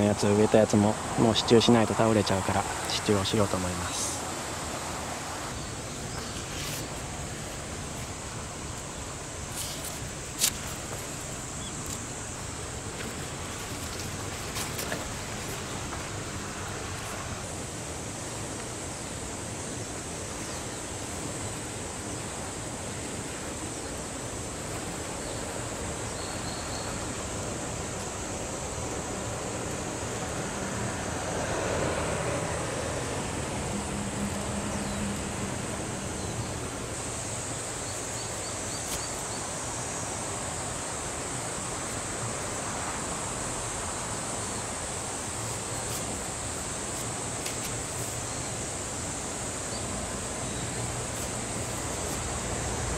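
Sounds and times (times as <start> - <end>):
rushing outdoor background noise: 0.0 - 52.9
thin high hiss: 0.0 - 52.9.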